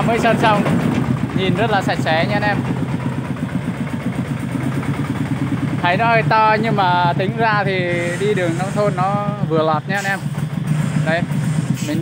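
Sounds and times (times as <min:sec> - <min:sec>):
diesel engine chugging: 0:00.0 - 0:12.0.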